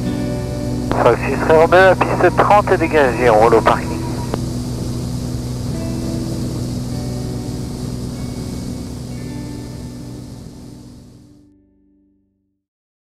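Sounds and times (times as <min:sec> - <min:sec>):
propeller plane engine drone: 0:00.0 - 0:11.3
quiet music: 0:00.0 - 0:12.2.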